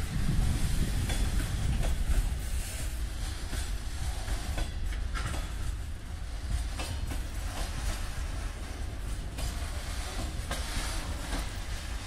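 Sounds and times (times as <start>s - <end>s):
freight train rumbling past: 0.0s - 12.0s
train wheels clicking over rails: 0.0s - 12.0s.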